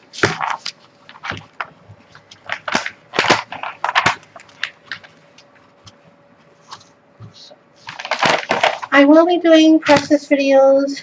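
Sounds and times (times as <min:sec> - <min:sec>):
paper crackling and crinkling: 0:00.1 - 0:06.0, 0:06.6 - 0:10.1.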